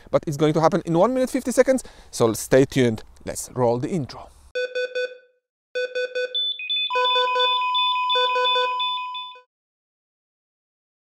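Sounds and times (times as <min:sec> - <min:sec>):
pulsing electronic beeps: 0:06.2 - 0:09.5
steady high tone: 0:06.3 - 0:09.5.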